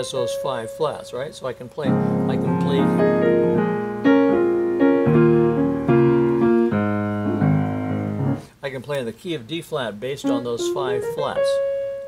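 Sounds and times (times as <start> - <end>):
piano chords ringing: 0.0 - 8.5, 10.1 - 12.0.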